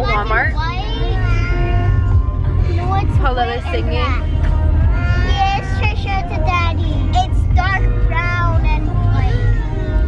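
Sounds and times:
low rumble of car cabin: 0:00.0 - 0:10.0.

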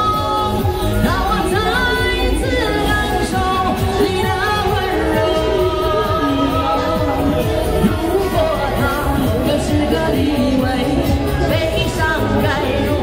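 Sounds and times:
pop accompaniment track: 0:00.0 - 0:13.0
woman singing into microphone: 0:00.0 - 0:13.0.

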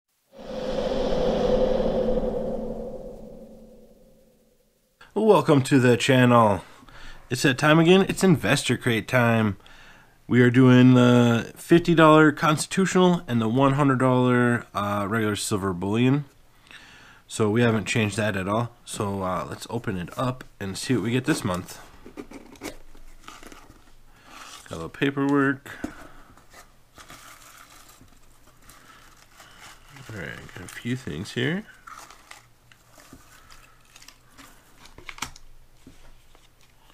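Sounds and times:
whooshing logo sound effect: 0:00.4 - 0:04.4
paper shred rustling in box: 0:26.5 - 0:30.9, 0:31.8 - 0:35.2.

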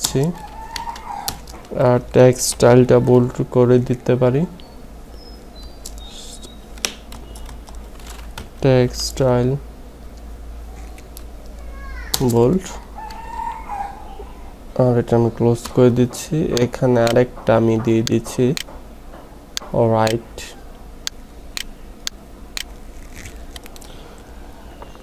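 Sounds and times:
steady low hum: 0:00.0 - 0:25.0
computer keyboard clicks: 0:05.8 - 0:08.5.

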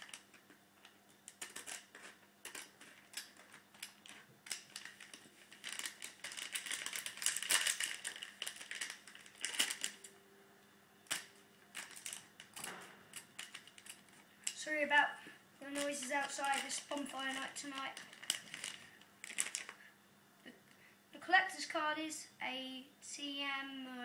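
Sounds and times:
foil wrapper crinkling and tearing: 0:00.0 - 0:00.4, 0:01.3 - 0:10.1, 0:11.1 - 0:14.7, 0:15.6 - 0:19.9.

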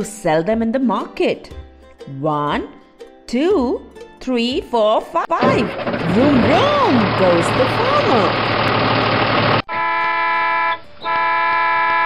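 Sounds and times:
cartoon truck horn honking: 0:09.7 - 0:12.0.

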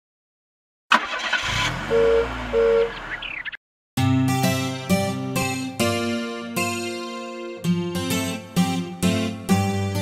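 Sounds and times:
car engine starting and running: 0:00.9 - 0:03.6
two-tone car horn beep: 0:01.8 - 0:03.0.

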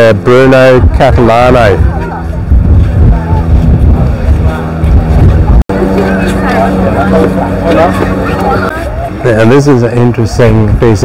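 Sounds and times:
people talking: 0:00.0 - 0:11.0
steady low hum: 0:00.0 - 0:11.0
wind buffeting microphone: 0:00.0 - 0:11.0.

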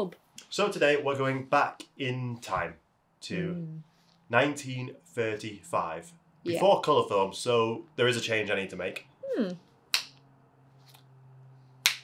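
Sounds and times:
faint low hum: 0:00.4 - 0:11.8
fingers snapping: 0:09.9 - 0:10.2.

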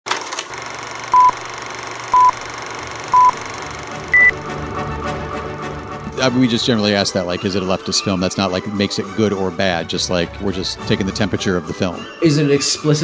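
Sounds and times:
electronic countdown beeps: 0:01.1 - 0:01.4, 0:02.1 - 0:02.4, 0:03.1 - 0:03.5, 0:04.1 - 0:04.4.

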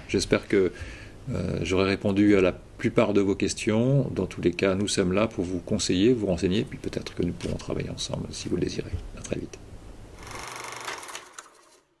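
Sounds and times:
small machine rattling whir: 0:10.2 - 0:12.0.

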